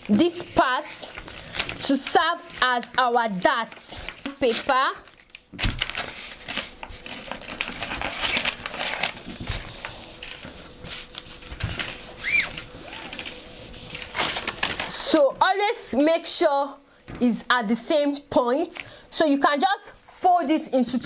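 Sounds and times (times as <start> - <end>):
paper rustling: 0.0 - 15.3.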